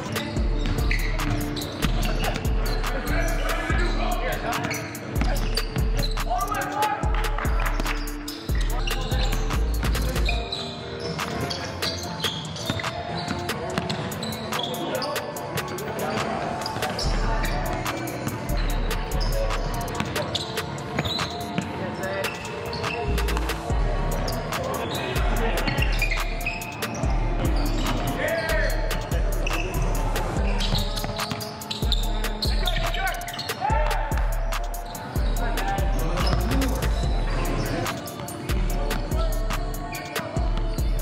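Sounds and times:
background music with deep bass: 0.0 - 41.0
basketballs bouncing on wooden floor: 12.6 - 14.7.

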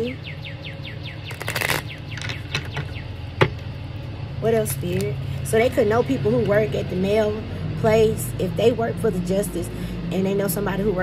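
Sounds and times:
bird chirping: 0.0 - 3.4
deck of cards rustling: 1.3 - 2.4.

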